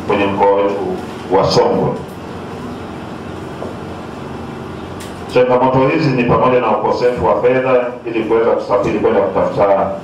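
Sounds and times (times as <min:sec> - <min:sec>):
hall room hum and hiss: 0:00.0 - 0:10.0.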